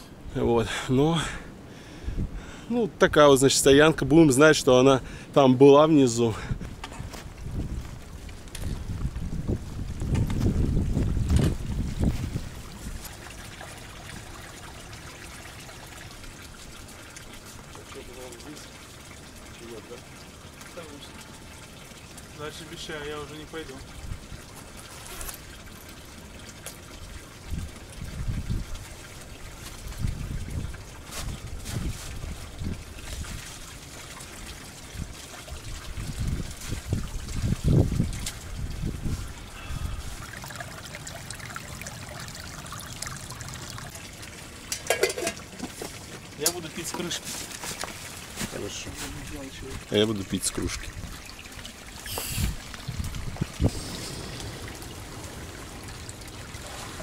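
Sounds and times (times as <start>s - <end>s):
spring water trickling: 0.0s - 57.0s
low rumbles: 52.5s - 57.0s.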